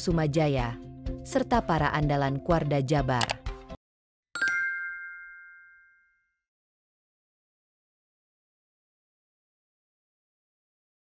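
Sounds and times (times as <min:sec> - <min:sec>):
bell-like ding: 0:04.4 - 0:06.4.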